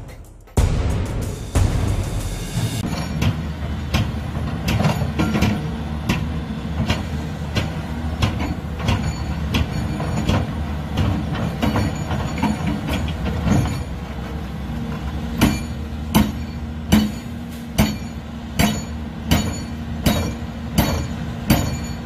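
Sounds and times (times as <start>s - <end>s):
excavator diesel engine: 2.5s - 22.0s
hydraulic breaker hammering rubble: 2.8s - 22.0s.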